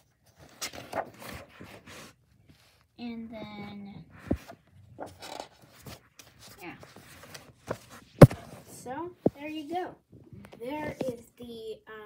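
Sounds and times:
paper pages rustling: 0.0s - 2.9s, 4.1s - 9.4s.

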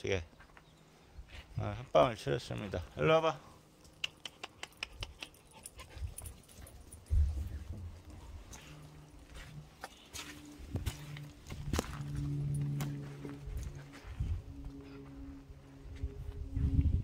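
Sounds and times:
footsteps on gravelly ground: 6.7s - 16.7s.

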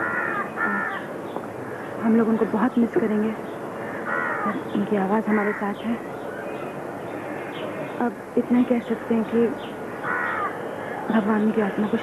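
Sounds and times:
crow cawing: 0.0s - 1.1s, 4.0s - 4.6s, 10.0s - 10.7s.

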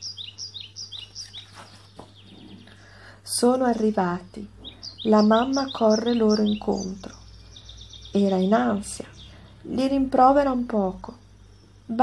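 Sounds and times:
small bird chirping: 0.0s - 12.0s.

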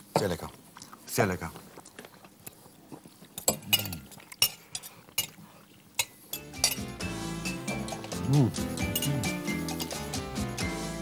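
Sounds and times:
cutlery clinking on plates: 3.4s - 5.4s, 6.0s - 6.9s, 8.8s - 10.0s
music: 6.4s - 11.0s.

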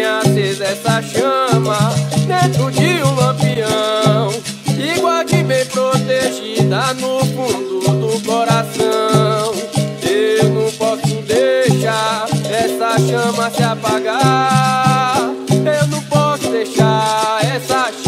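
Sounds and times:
upbeat song with steady beat: 0.0s - 18.0s.

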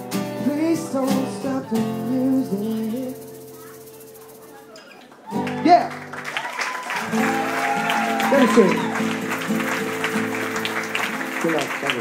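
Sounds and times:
acoustic guitar chord ringing: 7.1s - 11.6s.

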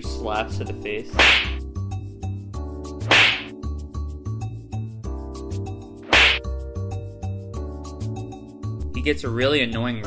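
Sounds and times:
slaps to the face: 1.2s - 1.6s, 3.0s - 3.5s, 6.1s - 6.5s.

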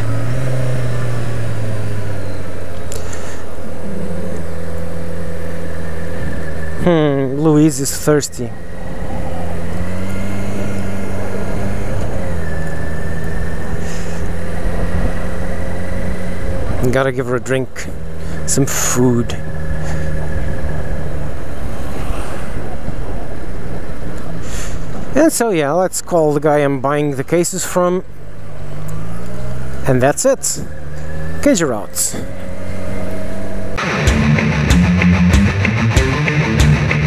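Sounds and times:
motorcycle engine running: 0.0s - 7.5s, 17.9s - 21.7s, 32.3s - 37.0s.

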